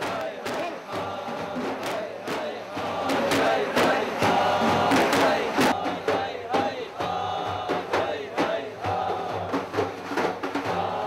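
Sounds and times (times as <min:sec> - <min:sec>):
crowd chanting in unison: 0:00.0 - 0:11.0
frame drums beating: 0:00.0 - 0:11.0.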